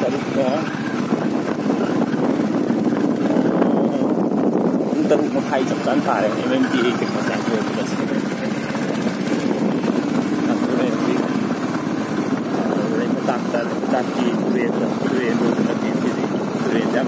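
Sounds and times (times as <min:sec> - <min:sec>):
motorcycle engine and road noise: 0:00.0 - 0:17.0.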